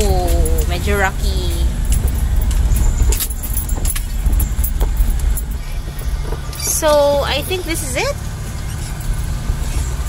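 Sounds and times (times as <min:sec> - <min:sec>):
car engine and road rumble: 0:00.0 - 0:10.0
car rattles and clicks: 0:00.0 - 0:10.0.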